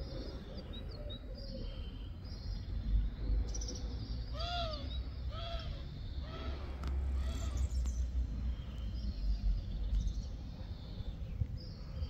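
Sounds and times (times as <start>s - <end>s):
small birds chirping: 0.0s - 12.0s
crow cawing: 4.4s - 6.6s.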